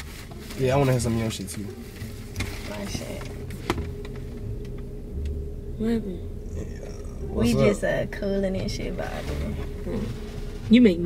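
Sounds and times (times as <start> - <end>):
car cabin rumble and hum: 0.0 - 11.0.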